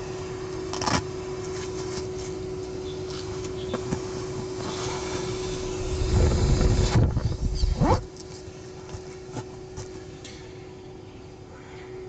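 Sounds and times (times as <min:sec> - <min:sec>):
steady hum: 0:00.0 - 0:12.0.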